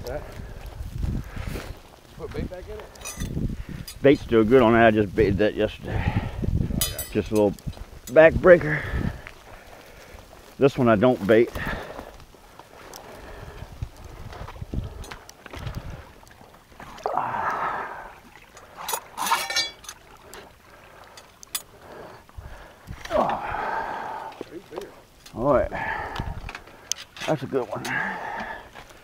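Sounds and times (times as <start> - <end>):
metal trap chain rattling: 3.0 - 3.4, 18.9 - 20.0
low voices: 23.0 - 26.4.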